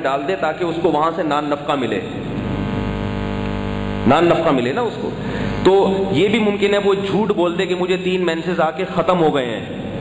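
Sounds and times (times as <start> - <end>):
speech: 0.0 - 2.2, 4.1 - 9.8
steady electronic buzz: 1.8 - 6.8.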